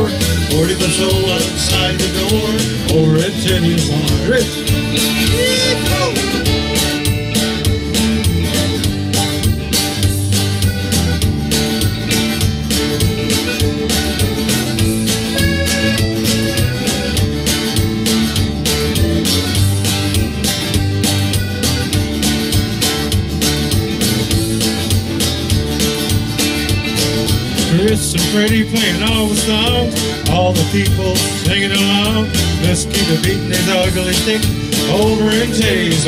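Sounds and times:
button accordion: 0.0s - 36.0s
electric guitar: 0.0s - 36.0s
steady beat: 0.0s - 36.0s
strummed acoustic guitar: 0.0s - 36.0s.

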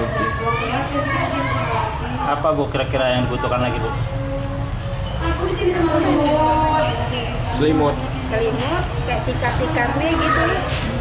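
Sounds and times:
children talking and calling out: 0.0s - 2.4s, 9.7s - 11.0s.

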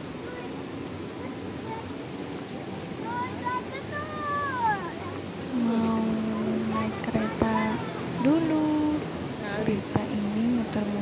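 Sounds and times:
river water rushing over weir: 0.0s - 11.0s
voices of passers-by: 0.0s - 11.0s.

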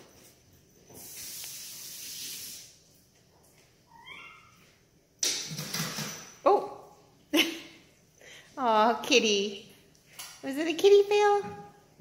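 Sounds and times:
soft hissy noise: 0.2s - 3.1s
kitten meowing: 3.9s - 4.6s.

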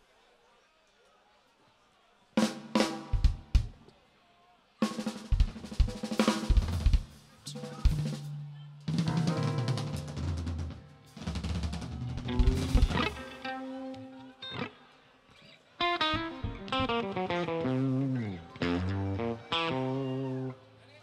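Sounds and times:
rock band playing: 2.4s - 3.8s, 4.8s - 14.7s, 15.8s - 20.5s.

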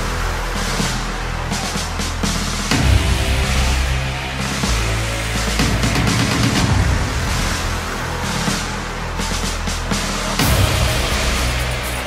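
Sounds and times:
loud background music: 0.0s - 12.0s
rapid percussive hits: 0.0s - 12.0s.

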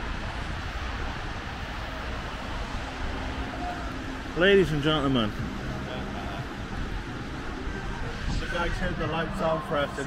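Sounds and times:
distant city traffic: 0.0s - 10.0s
wind rumble on microphone: 0.0s - 10.0s.

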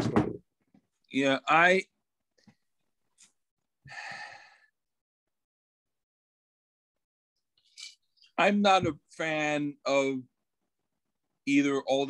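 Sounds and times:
person sighing: 3.9s - 4.7s.

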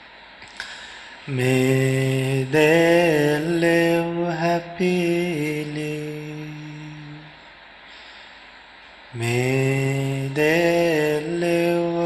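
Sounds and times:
man chanting: 1.3s - 7.4s, 9.2s - 12.0s.

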